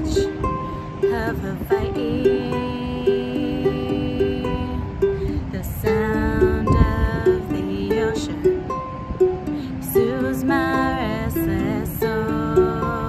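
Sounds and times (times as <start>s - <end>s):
ukulele plucked chords: 0.0s - 13.0s
wind gust on microphone: 0.0s - 13.0s.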